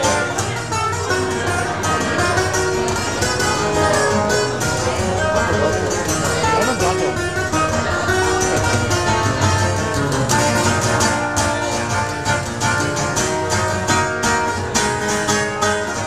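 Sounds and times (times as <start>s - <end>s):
fast acoustic guitar picking: 0.0s - 16.0s.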